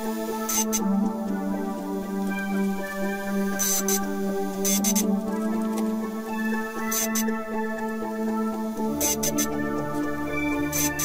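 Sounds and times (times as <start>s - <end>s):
sustained ambient synth pad: 0.0s - 11.0s.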